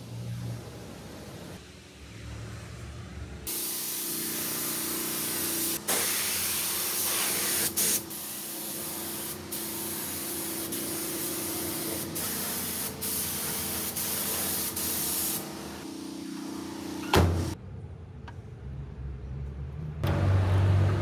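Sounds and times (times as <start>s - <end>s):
spray gun hissing: 3.5s - 17.5s.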